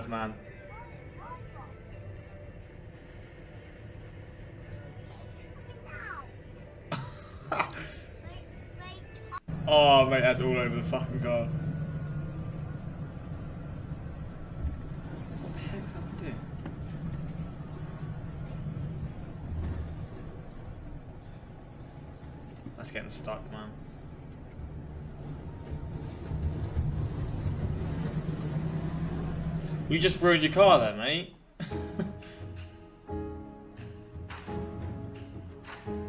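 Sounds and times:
vehicle driving on road: 0.0 - 31.5.

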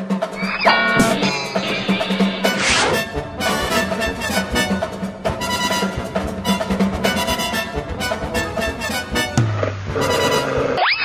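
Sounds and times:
background music: 0.0 - 10.9
rising whistle-like glide: 0.3 - 3.1.

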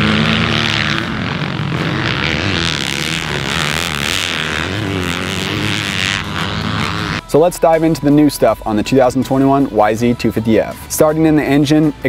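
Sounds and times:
dirt bike engine revving: 0.0 - 7.4.

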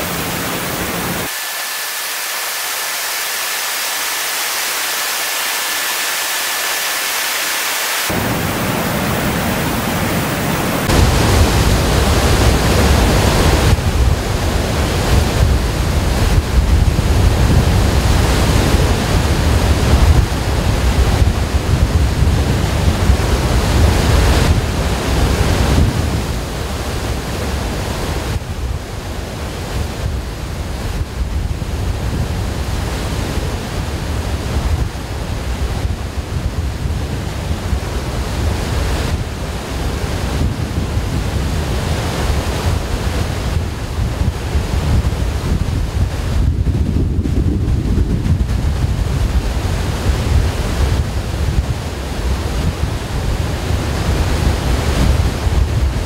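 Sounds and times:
water rushing down spillway: 0.0 - 56.0.

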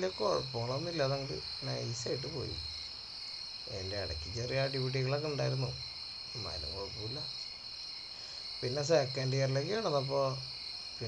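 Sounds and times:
person talking: 0.0 - 2.6, 3.7 - 5.8, 6.4 - 7.3
crickets chirring: 0.0 - 11.0.

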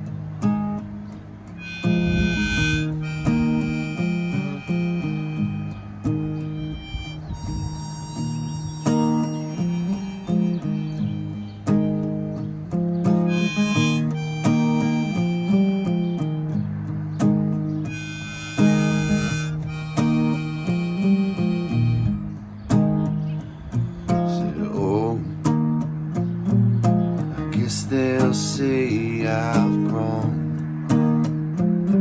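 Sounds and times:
acoustic guitar chords: 0.0 - 32.0
harmonica melody: 1.5 - 16.8, 17.6 - 24.6.

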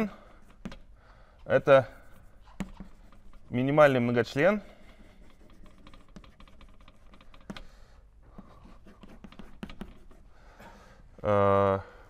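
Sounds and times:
chalk tapping and scratching: 0.4 - 10.8.

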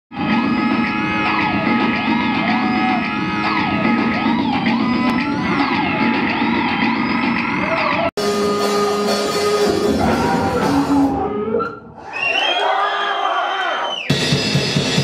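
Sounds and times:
harsh electronic noise music: 0.1 - 11.9.

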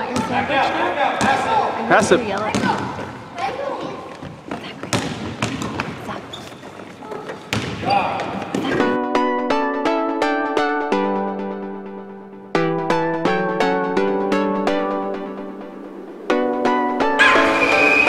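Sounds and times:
basketball bouncing on court: 0.0 - 3.2, 4.1 - 8.8
children's voices: 2.4 - 4.9
plucked keyboard-like music: 8.7 - 18.0.

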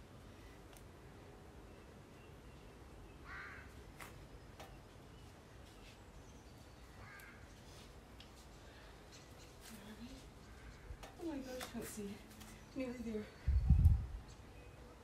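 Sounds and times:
faint bird calls: 1.7 - 3.8.

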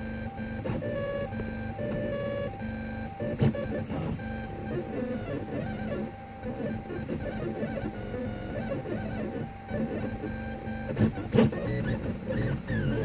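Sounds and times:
stepper motors whining: 0.7 - 13.0.

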